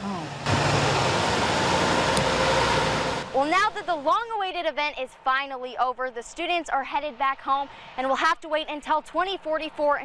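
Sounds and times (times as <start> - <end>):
bus driving past: 0.0 - 3.8.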